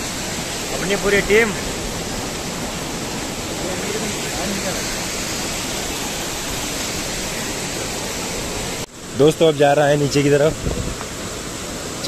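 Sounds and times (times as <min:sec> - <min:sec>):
stream rushing: 0:00.0 - 0:12.0.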